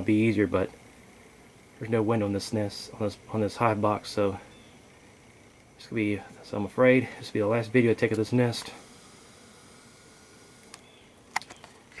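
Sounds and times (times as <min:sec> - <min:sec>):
faint background hiss: 0:00.0 - 0:12.0
sharp clicks and knocks: 0:10.6 - 0:12.0.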